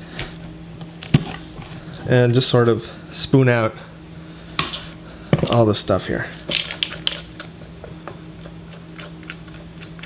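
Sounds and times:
metal spoon scraping squash: 0:06.2 - 0:10.0.

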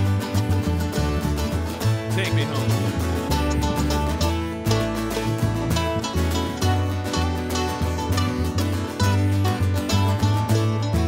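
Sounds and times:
mandolin: 0:00.0 - 0:11.0
strummed acoustic guitar: 0:00.0 - 0:11.0
upright bass notes: 0:00.0 - 0:11.0.

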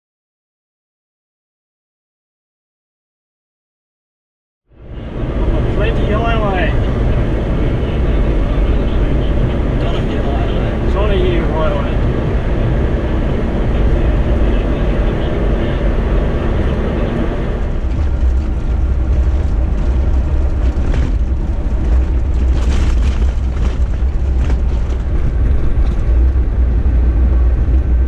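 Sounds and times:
road and wind rumble: 0:04.7 - 0:28.0.

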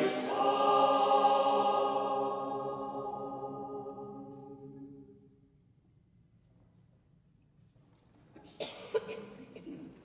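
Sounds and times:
person coughing: 0:08.5 - 0:09.9.

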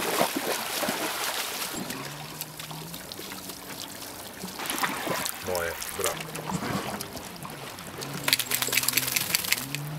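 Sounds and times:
wet dog shaking off water: 0:08.1 - 0:09.9.

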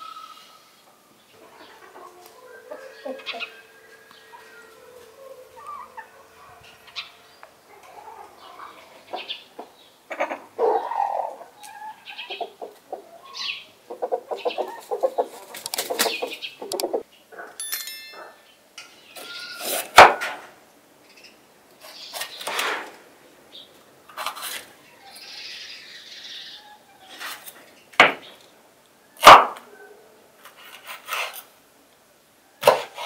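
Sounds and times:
chickens clucking: 0:01.3 - 0:17.5.

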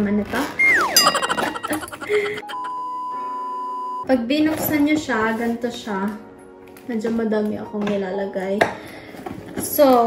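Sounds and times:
electronic tone over chord: 0:00.6 - 0:03.2.

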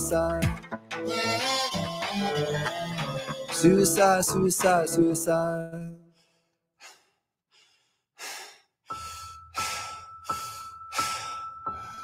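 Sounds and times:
music: 0:00.0 - 0:05.8, 0:08.9 - 0:12.0
rhythmic heavy breathing: 0:06.0 - 0:12.0.

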